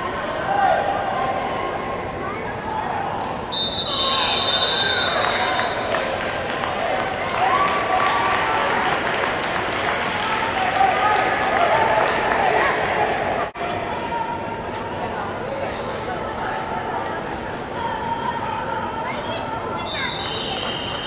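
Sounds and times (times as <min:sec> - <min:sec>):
spectators shouting and cheering: 0:00.0 - 0:14.6
referee's whistle long blast: 0:03.5 - 0:05.8.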